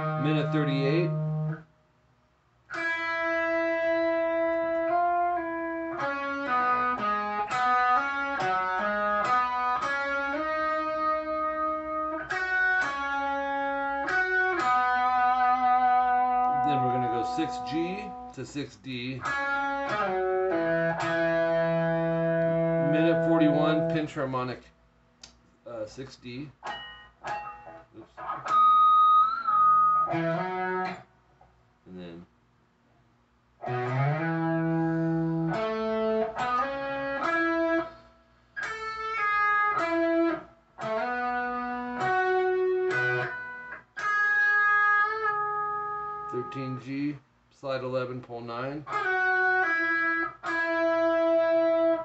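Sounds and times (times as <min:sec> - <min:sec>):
electric guitar rock lead: 0:00.0 - 0:01.6, 0:02.7 - 0:18.3, 0:19.2 - 0:24.1, 0:26.6 - 0:31.1, 0:33.6 - 0:46.3, 0:48.9 - 0:52.0.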